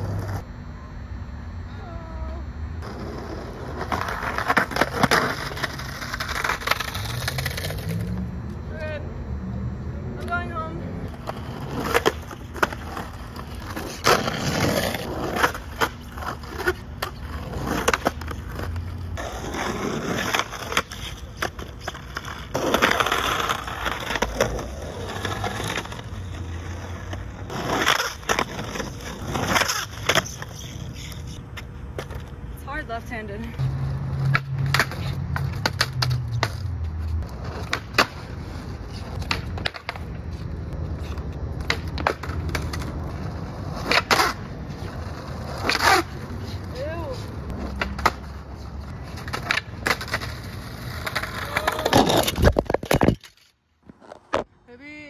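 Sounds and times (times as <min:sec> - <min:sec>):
skateboard wheels rolling on asphalt: 0:00.0 - 0:00.5, 0:02.8 - 0:55.0
skateboard clacks: 0:34.2 - 0:40.2, 0:41.1 - 0:44.4, 0:45.0 - 0:53.4.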